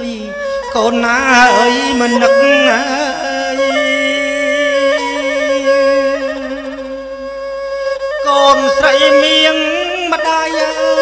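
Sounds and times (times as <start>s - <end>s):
instrumental accompaniment: 0.0s - 11.0s
voice holding long note: 0.8s - 7.0s.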